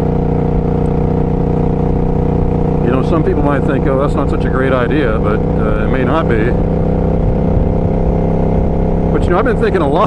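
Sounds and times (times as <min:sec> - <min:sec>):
motorcycle engine running steadily: 0:00.0 - 0:10.0.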